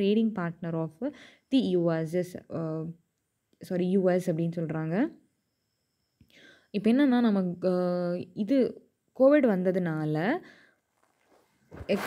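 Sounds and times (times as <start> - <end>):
soft breath: 1.2 - 1.5, 6.3 - 6.8.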